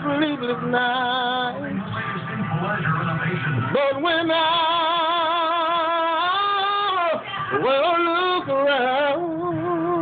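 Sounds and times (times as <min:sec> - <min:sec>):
person singing gospel: 0:00.0 - 0:02.1, 0:02.7 - 0:10.0
low musical backing: 0:00.0 - 0:10.0.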